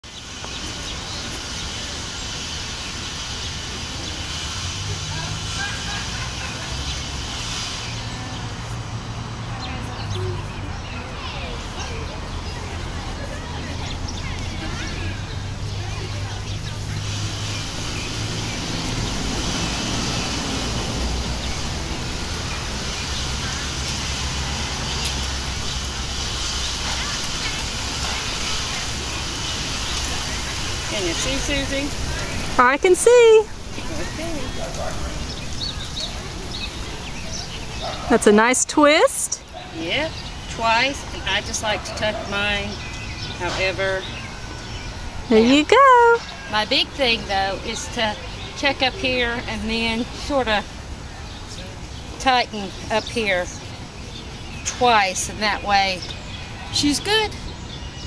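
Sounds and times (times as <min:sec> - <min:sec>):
faint distant voices: 0:00.0 - 0:58.0
outdoor hiss: 0:00.1 - 0:57.2.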